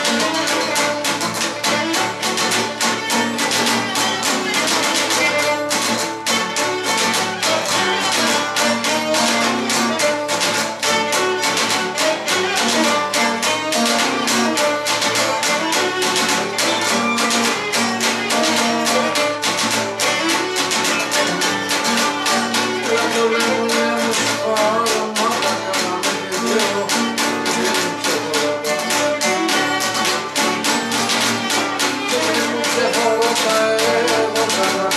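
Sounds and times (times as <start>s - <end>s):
bowed lyra melody: 0.0s - 34.9s
lute strumming rhythm: 0.0s - 34.9s.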